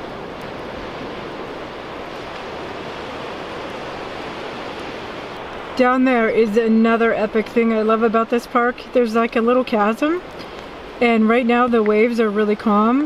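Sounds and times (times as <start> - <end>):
ocean surf breaking: 0.0 - 13.0.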